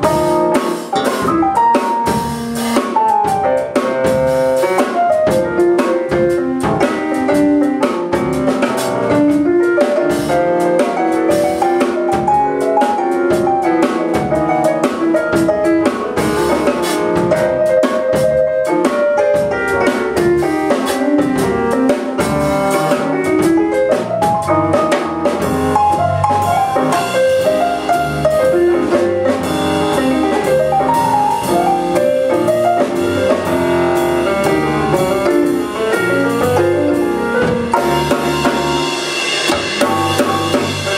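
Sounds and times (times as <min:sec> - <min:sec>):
bass guitar: 0:00.0 - 0:40.9
drum kit: 0:00.0 - 0:40.9
electric keyboard: 0:00.0 - 0:40.9.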